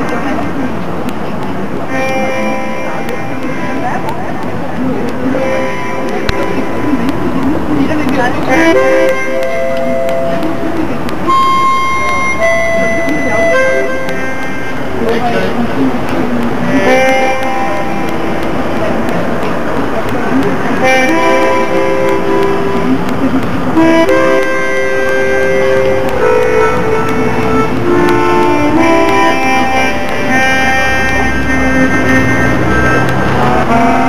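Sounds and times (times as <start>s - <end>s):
murmur of people talking: 0.0s - 34.0s
long high instrument notes: 1.7s - 7.8s, 8.4s - 20.1s, 20.7s - 34.0s.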